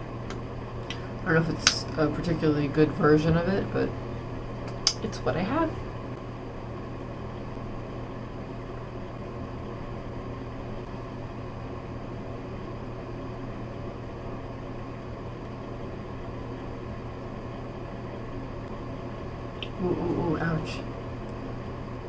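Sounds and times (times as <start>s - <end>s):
fan motor humming: 0.0s - 22.0s.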